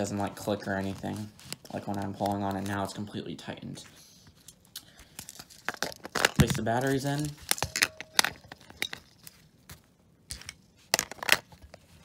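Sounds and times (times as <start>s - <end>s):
faint handling rustle: 0.2s - 4.5s.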